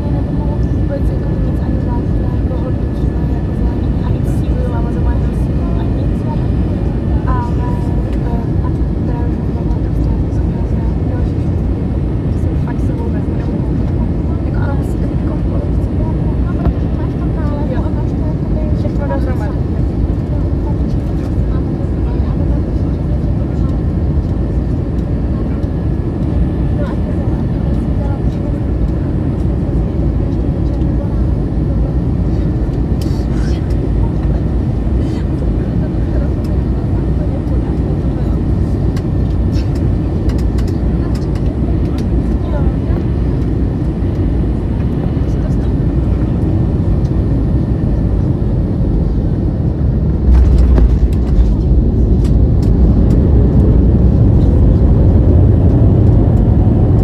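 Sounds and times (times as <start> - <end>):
airplane cabin rumble: 0.0 - 57.0.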